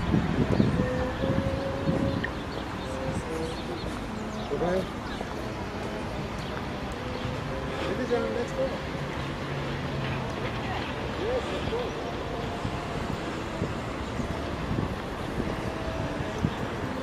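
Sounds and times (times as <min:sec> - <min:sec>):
faint voices of passers-by: 0:00.0 - 0:17.0
wind rumble on microphone: 0:00.0 - 0:17.0.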